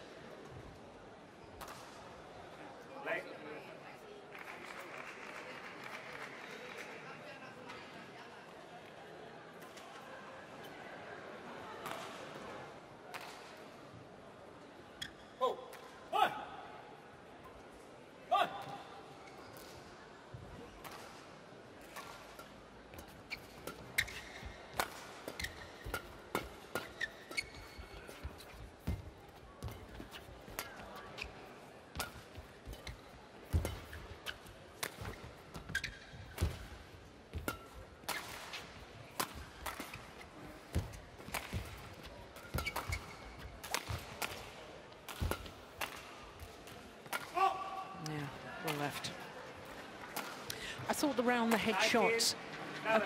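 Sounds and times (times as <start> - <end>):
rackets hitting shuttlecock: 20.8 - 21.2, 21.8 - 31.3, 31.9 - 47.5
shoes squeaking on court: 22.9 - 44.1.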